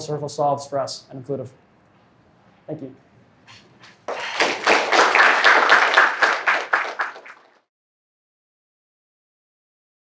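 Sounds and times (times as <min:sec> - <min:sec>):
audience applauding: 0:04.1 - 0:07.6.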